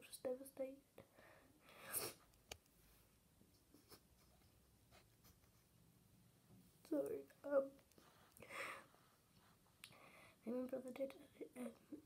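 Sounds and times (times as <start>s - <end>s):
soft breath: 1.1s - 2.2s, 8.0s - 10.4s.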